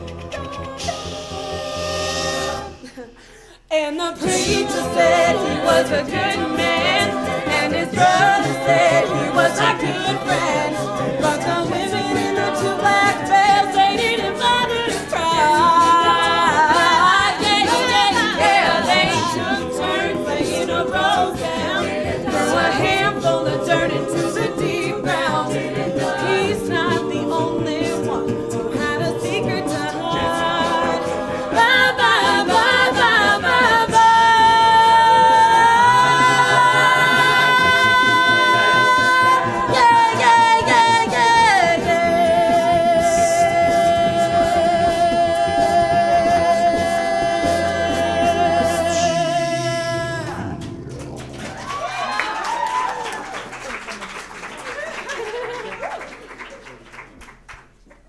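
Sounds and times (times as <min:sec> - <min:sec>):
backing voices singing: 0:00.0 - 0:53.3.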